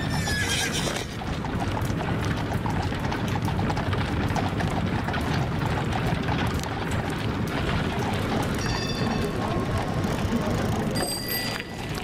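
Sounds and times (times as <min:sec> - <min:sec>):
clopping knocks: 0:01.0 - 0:12.0.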